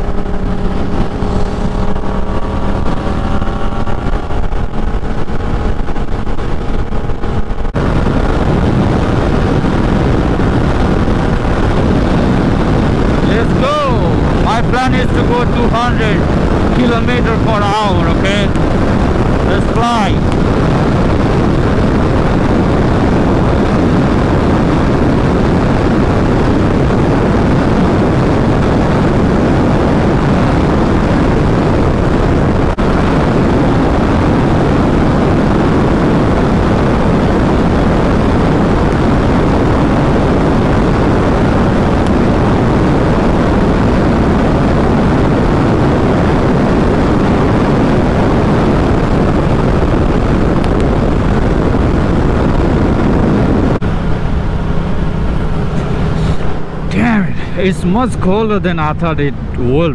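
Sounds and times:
motorcycle engine at high revs: 0.0 - 58.4
wind and road noise: 0.0 - 59.9.

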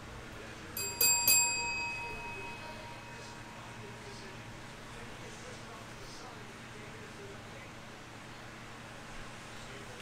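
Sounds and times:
small bell ringing: 0.8 - 4.2.

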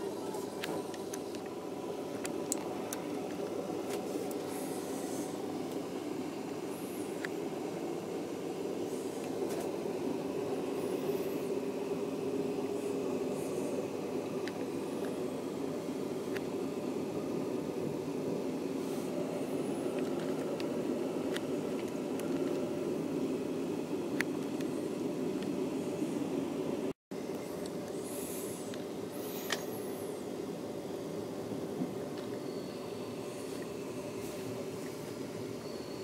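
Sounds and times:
train rumbling inside carriage: 0.0 - 8.0.

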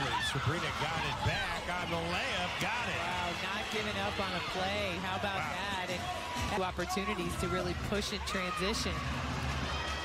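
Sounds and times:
commentator talking: 0.0 - 8.9
basketball game court sounds: 0.0 - 10.0.

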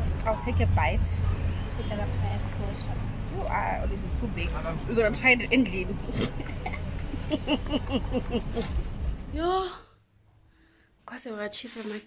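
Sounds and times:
engine and road rumble in car: 0.0 - 9.6.

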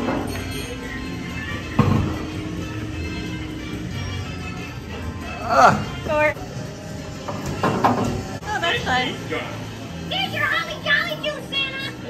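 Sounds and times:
music from small speaker: 0.3 - 7.2.

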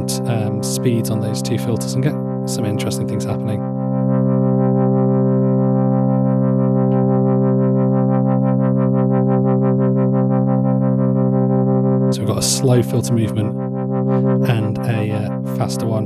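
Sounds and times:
synthesizer note with wobbling filter: 0.0 - 16.0.

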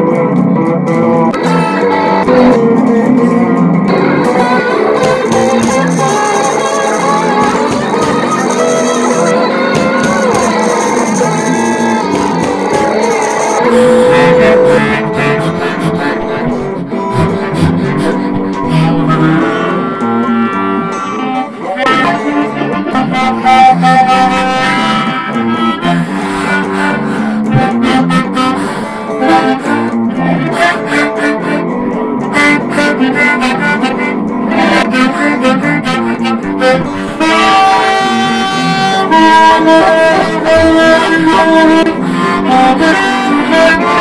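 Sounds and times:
blues band playing: 0.0 - 44.0
harmonica: 0.0 - 44.0.

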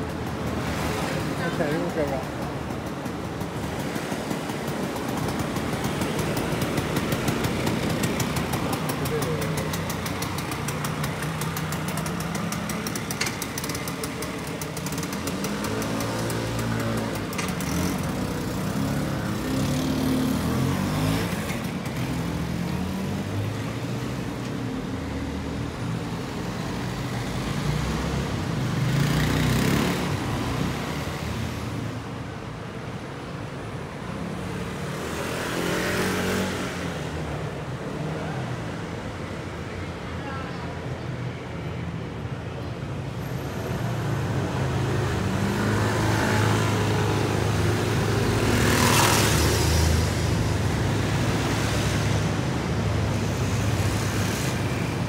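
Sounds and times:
vehicle engines passing: 0.0 - 55.0
scooter engine idling: 1.7 - 15.7
people's voices: 8.5 - 10.2.

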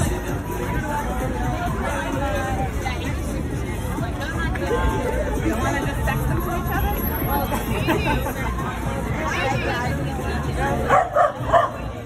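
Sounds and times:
outdoor crowd chatter: 0.0 - 12.0
dog barking: 10.9 - 11.8.

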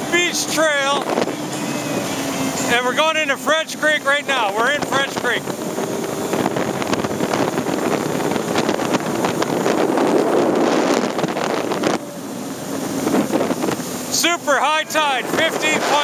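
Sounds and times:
personal watercraft engine: 0.0 - 16.0
wind buffeting microphone: 0.0 - 16.0.

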